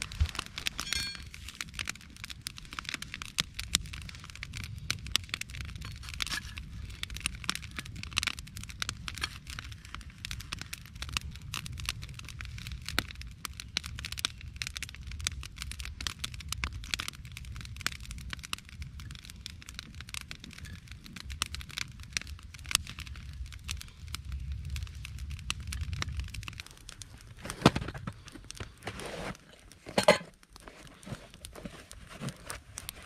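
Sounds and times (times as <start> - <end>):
campfire crackling and popping: 0.0 - 33.0.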